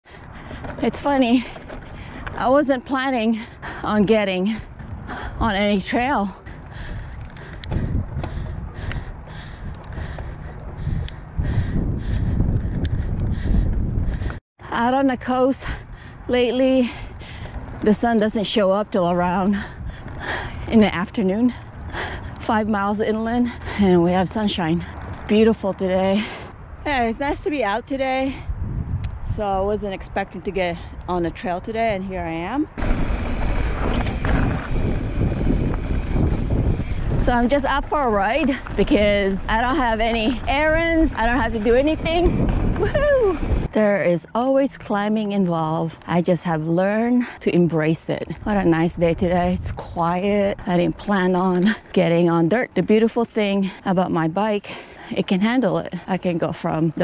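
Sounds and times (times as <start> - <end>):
wind rumble on microphone: 0.0 - 54.6
bike clicks and rattles: 4.5 - 14.4, 32.8 - 43.7
tyres rolling over dirt: 32.8 - 43.7.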